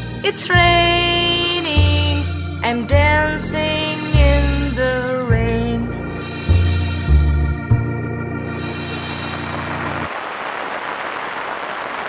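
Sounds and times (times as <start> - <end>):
rain falling steadily: 8.8 - 12.0.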